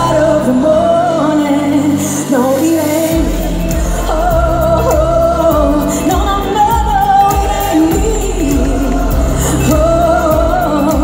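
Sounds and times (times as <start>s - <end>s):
synth track with steady beat: 0.0s - 11.0s
woman singing: 0.0s - 11.0s
deep bass line: 3.1s - 11.0s.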